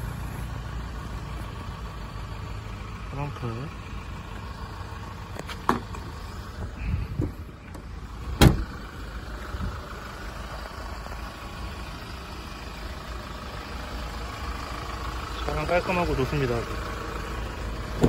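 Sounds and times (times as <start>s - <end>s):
van engine idling: 0.0s - 18.0s
tailgate shutting thump: 5.6s - 6.0s, 8.4s - 8.7s.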